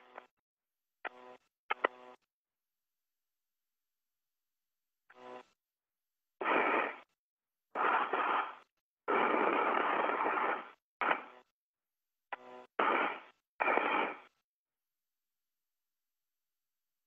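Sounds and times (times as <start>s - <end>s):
radio hiss bursts with faint hum: 6.4s - 7.1s, 7.8s - 11.4s, 12.8s - 14.3s.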